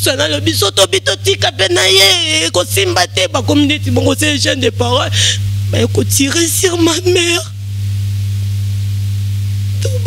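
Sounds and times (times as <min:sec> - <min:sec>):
loud steady low hum: 0:00.0 - 0:10.0.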